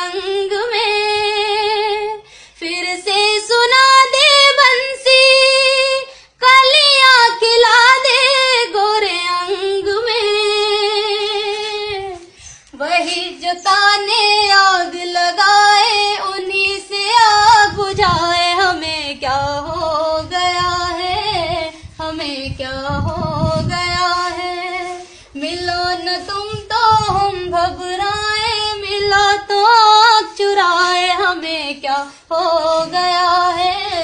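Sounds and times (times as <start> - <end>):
woman singing unaccompanied: 0.0 - 34.0.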